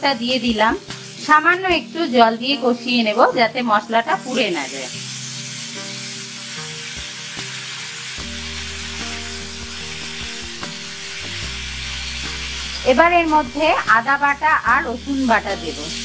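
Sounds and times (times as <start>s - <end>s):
food sizzling in oil: 0.0s - 16.0s.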